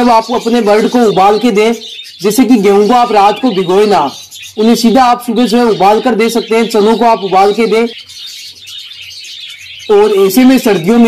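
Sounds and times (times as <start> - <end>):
budgerigars twittering: 0.0 - 11.0.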